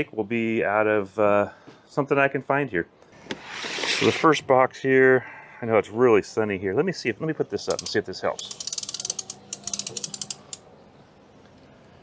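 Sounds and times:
ratchet crank clicking: 0:07.7 - 0:10.6.

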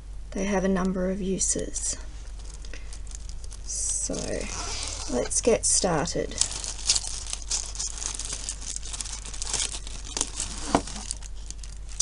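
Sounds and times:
plastic bag crinkling and rustling: 0:01.7 - 0:12.0
zipper unzipping: 0:04.1 - 0:05.4.

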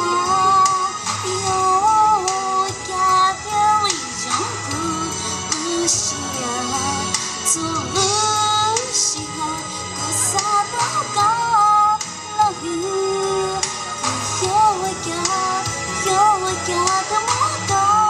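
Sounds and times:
recorded backing music: 0:00.0 - 0:18.0
woman singing into microphone: 0:00.0 - 0:18.0.

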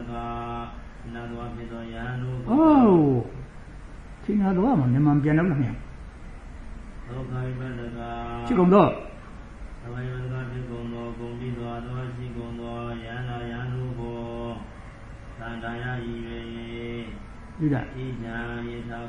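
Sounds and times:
monk chanting in low held notes: 0:00.0 - 0:03.4, 0:07.1 - 0:09.2, 0:09.8 - 0:17.2, 0:17.8 - 0:19.0.

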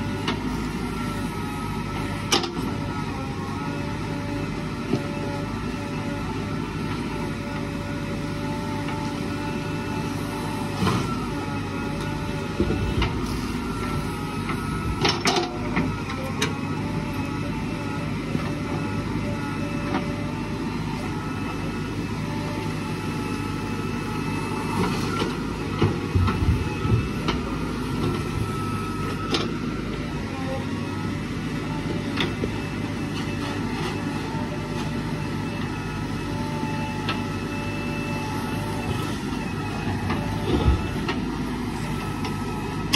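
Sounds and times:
diesel engine under load: 0:00.0 - 0:42.9.

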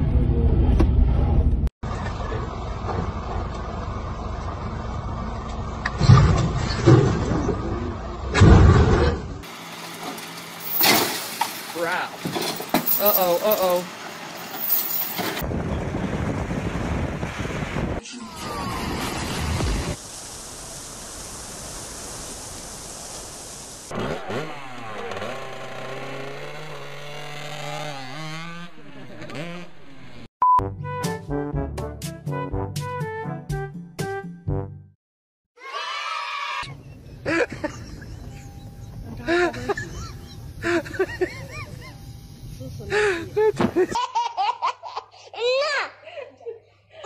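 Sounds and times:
dirt bike engine revving: 0:23.9 - 0:30.3
person laughing: 0:37.2 - 0:38.4, 0:39.0 - 0:42.0, 0:42.8 - 0:45.2, 0:46.0 - 0:47.0
high-pitched giggle: 0:39.0 - 0:42.0, 0:42.9 - 0:47.0.

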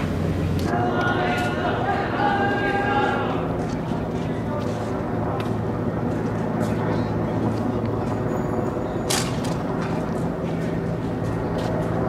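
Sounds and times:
helicopter engine and rotor hum: 0:00.0 - 0:12.0.

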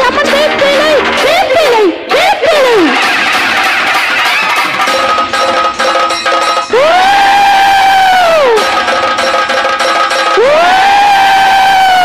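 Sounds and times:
tabla and tambourine: 0:02.9 - 0:10.8.

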